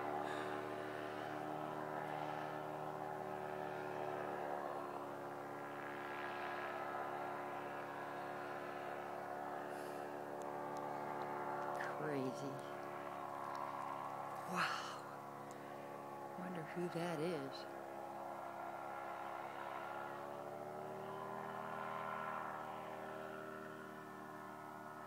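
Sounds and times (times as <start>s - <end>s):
distant paramotor engine droning: 0.0s - 25.0s.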